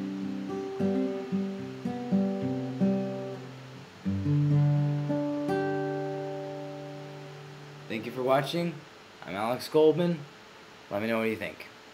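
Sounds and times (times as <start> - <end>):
acoustic guitar playing: 0.0 - 8.8.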